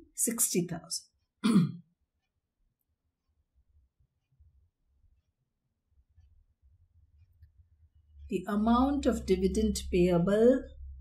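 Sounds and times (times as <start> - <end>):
woman clearing her throat: 1.4 - 1.9.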